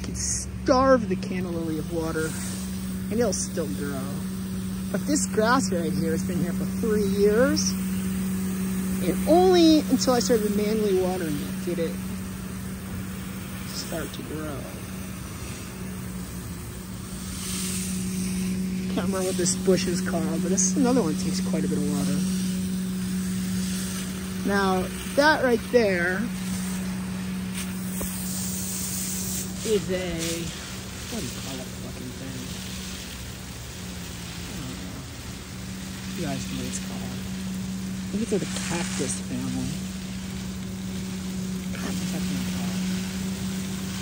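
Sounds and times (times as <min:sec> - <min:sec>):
low mechanical hum: 0:00.0 - 0:44.0
water hissing from hose nozzle: 0:00.0 - 0:44.0.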